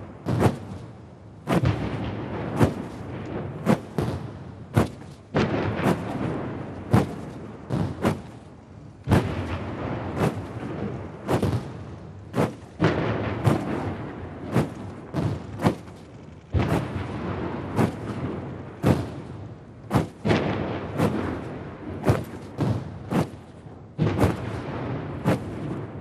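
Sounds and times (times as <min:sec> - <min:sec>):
cannons firing with echoing rumble: 0:00.0 - 0:26.0.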